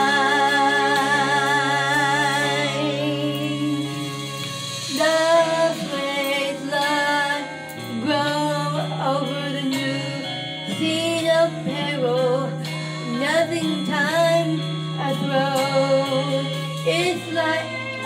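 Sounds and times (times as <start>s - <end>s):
karaoke backing track: 0.0s - 18.0s
woman singing into microphone: 0.0s - 18.0s.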